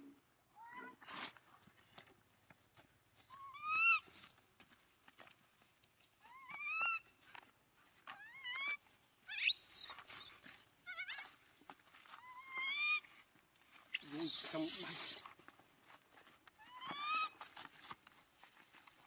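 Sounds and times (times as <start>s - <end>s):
infant monkey crying coos: 14.0s - 15.2s.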